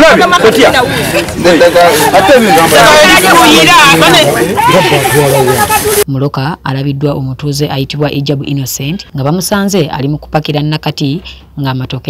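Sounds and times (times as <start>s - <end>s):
people talking over one another: 0.0s - 6.1s.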